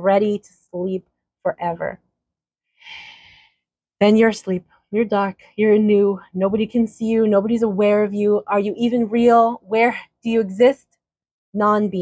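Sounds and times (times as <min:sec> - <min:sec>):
woman breathing: 0:02.7 - 0:03.7.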